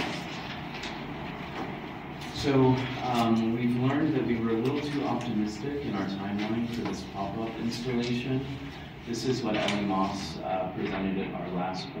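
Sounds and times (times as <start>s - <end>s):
papers rustling: 0.0s - 11.0s
meeting room background noise: 0.0s - 12.0s.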